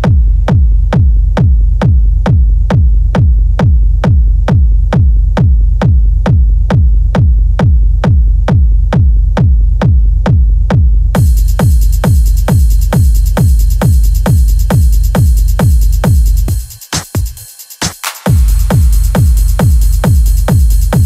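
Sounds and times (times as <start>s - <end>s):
techno kick drum: 0.0s - 21.0s
bright high techno mix: 11.2s - 21.0s.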